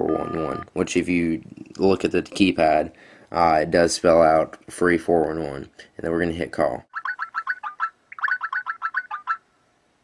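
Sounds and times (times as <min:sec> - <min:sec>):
rapid beeps of call tone: 0:00.0 - 0:00.7, 0:07.0 - 0:09.4.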